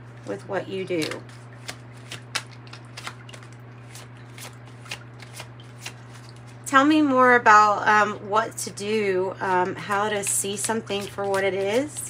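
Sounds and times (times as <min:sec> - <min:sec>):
steady low hum: 0:00.0 - 0:12.0
card snaps while shuffling: 0:01.0 - 0:06.4.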